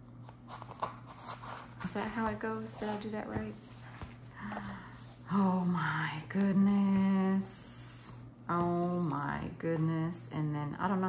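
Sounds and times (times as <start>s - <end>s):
paper notebook rustling: 0.3s - 5.2s.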